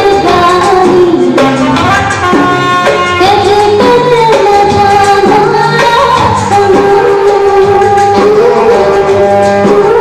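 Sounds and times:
instrumental backing music: 0.0 - 10.0
person singing a melody: 0.0 - 10.0.

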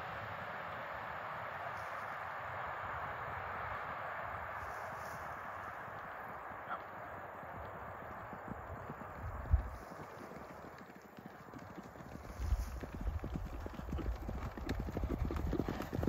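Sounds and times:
horse hoofbeats on grass: 6.7 - 16.0.

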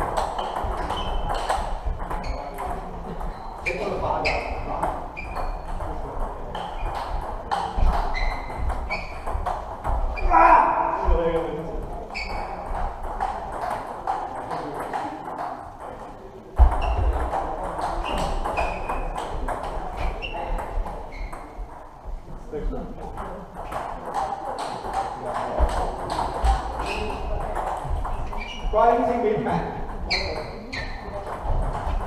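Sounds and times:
table tennis balls clicking: 0.0 - 10.2, 11.5 - 21.9, 23.0 - 28.9, 29.8 - 32.0
murmur of voices: 0.0 - 32.0.

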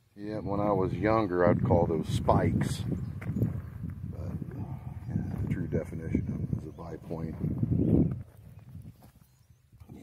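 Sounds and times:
footsteps on pebbly soil: 3.0 - 9.6.

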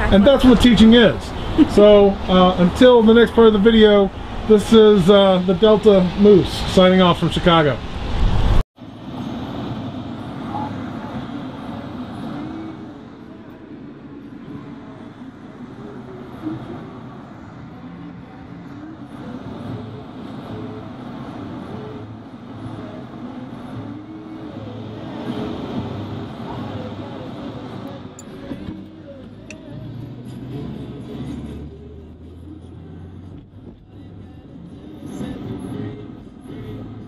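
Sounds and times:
car road and engine noise: 0.0 - 37.0
faint muffled voices: 10.4 - 30.0.

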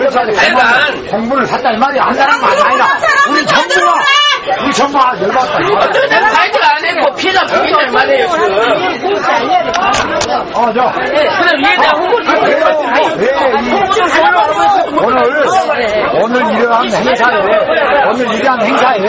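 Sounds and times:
people arguing loudly: 0.0 - 19.0.

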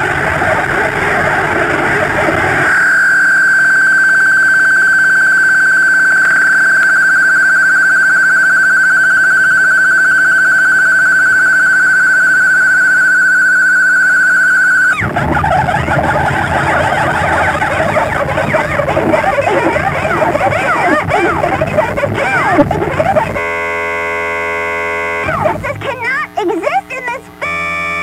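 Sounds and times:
churning wall of noise: 0.0 - 3.0, 15.0 - 23.4
high-pitched wavering tone: 2.6 - 23.4.

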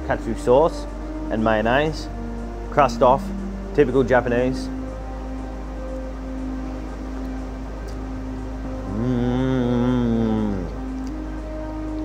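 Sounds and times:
background music with held tones: 0.0 - 12.0.

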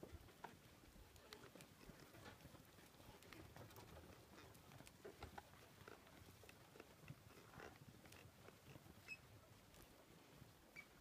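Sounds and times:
faint ticks: 0.1 - 9.9.

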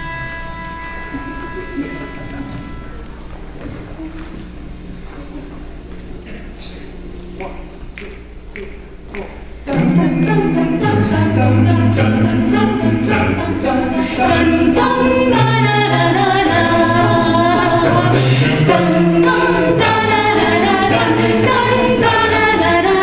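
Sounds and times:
a cappella group singing: 7.4 - 23.0.

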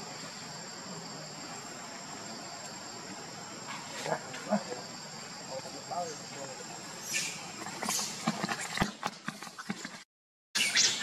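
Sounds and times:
insect chorus: 0.0 - 10.0, 10.6 - 11.0
short insect calls: 0.0 - 10.0, 10.6 - 11.0.

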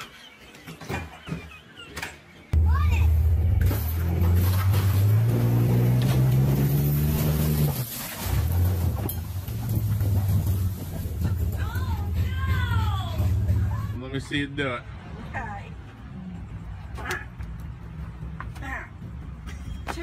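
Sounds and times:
vehicle engine under load: 2.6 - 14.0.

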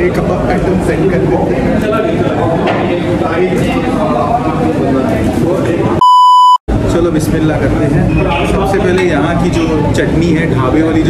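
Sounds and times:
censor bleep: 6.0 - 6.6.

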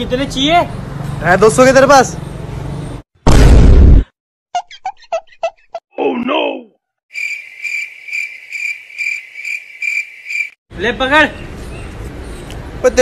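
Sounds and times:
person exclaiming: 5.9 - 6.7
cricket chirping: 7.1 - 10.6.

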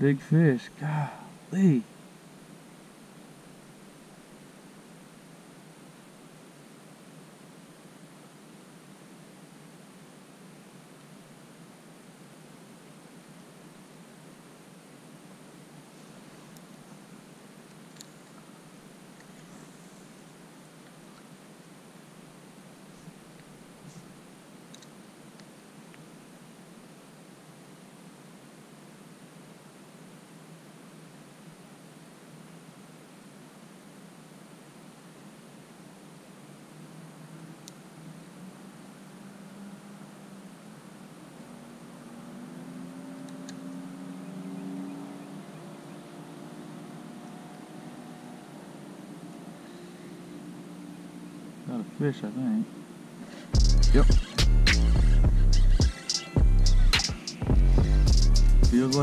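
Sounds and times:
faint steady hiss: 0.0 - 59.0.

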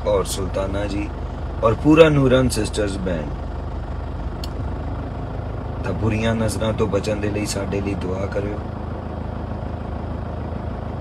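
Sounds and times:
car engine hum from inside cabin: 0.0 - 11.0.

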